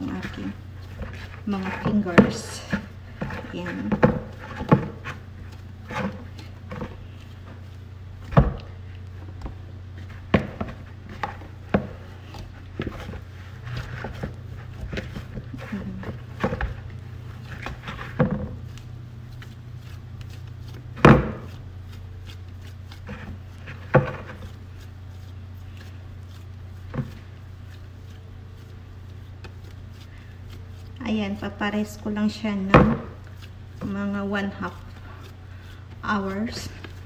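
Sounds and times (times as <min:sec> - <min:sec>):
dough slapping in plastic bowl: 0:00.0 - 0:37.0
steady low hum: 0:00.0 - 0:37.0.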